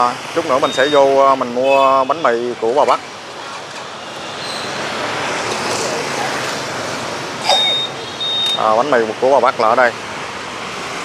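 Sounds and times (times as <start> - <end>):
motorbike traffic: 0.0 - 11.0
short high-pitched beep: 7.4 - 8.6.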